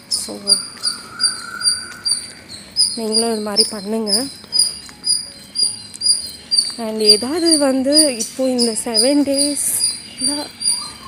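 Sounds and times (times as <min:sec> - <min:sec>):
cricket chirping: 0:00.0 - 0:07.6.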